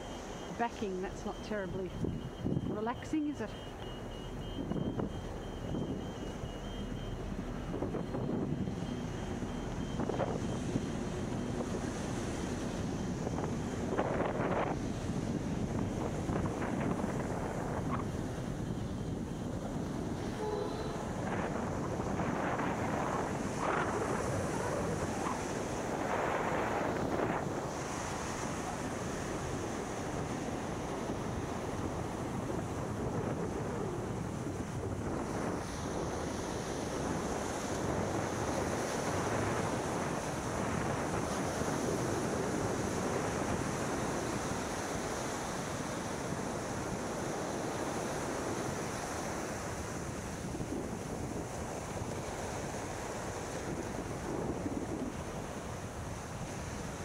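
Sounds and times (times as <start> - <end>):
truck reversing beeper: 0.0 - 11.6, 20.3 - 21.3
wind buffeting microphone: 0.0 - 57.0.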